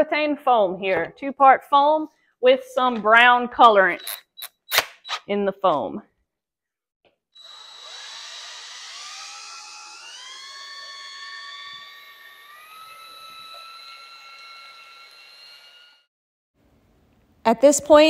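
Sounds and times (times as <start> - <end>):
cordless drill motor whine: 7.4 - 16.1.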